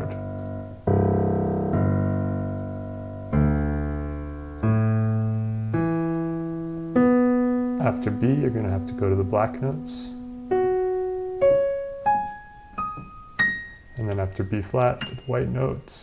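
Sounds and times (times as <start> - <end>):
digital piano playing fifths: 0.0 - 16.0.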